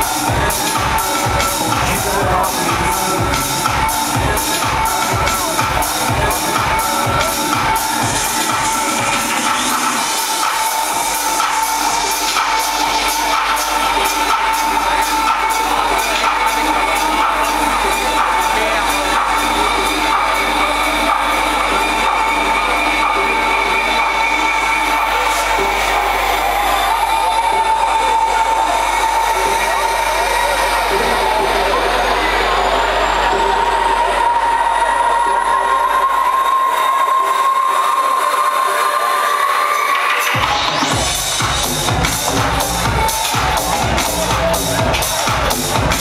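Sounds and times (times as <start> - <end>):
kick drum and bass: 0.0 - 36.5, 40.3 - 46.0
synth chords: 0.0 - 46.0.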